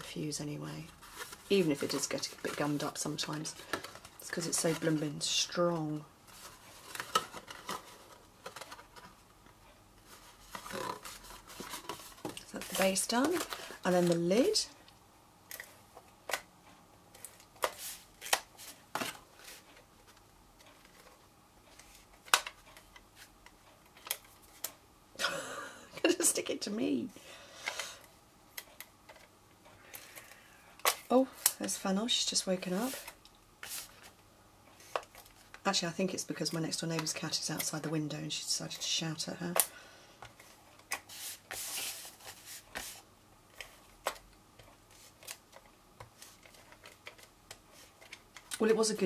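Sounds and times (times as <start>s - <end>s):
card stock rustling: 0.8s - 9.2s, 10.0s - 14.6s, 40.3s - 49.0s.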